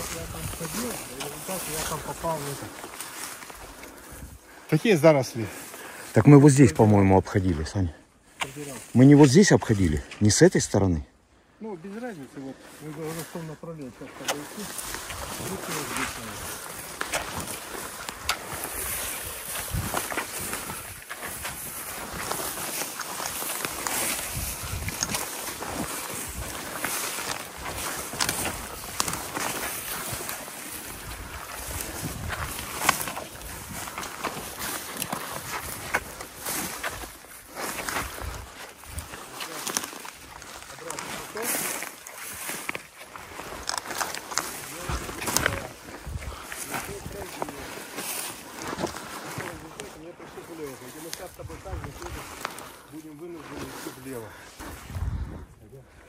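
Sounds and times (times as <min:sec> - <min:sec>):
branches swishing against clothing: 0:00.0 - 0:04.6, 0:12.0 - 0:55.6
boots tramping through shrubs: 0:00.0 - 0:11.0, 0:11.8 - 0:55.8
twigs crackling: 0:00.0 - 0:56.0.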